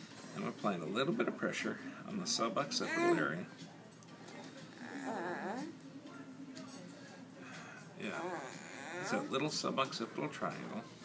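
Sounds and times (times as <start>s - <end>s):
girl moaning: 4.8s - 5.7s, 8.1s - 9.3s.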